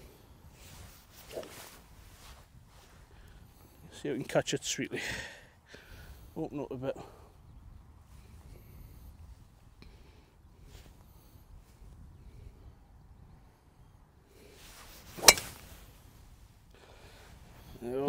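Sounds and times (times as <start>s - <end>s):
golf club swing swish: 0.6s - 2.4s, 14.8s - 15.9s
golf ball struck crack: 15.2s - 15.7s.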